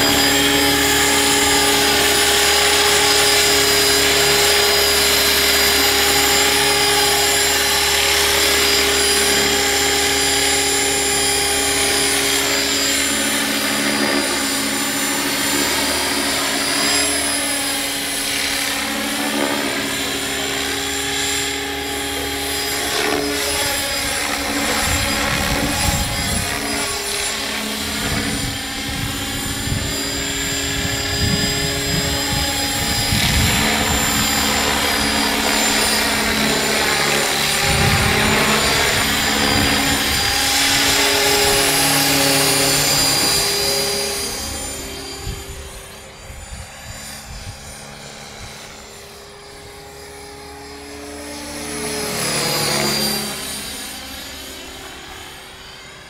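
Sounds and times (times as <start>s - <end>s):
rc helicopter motor and rotor whine: 0.0s - 56.0s.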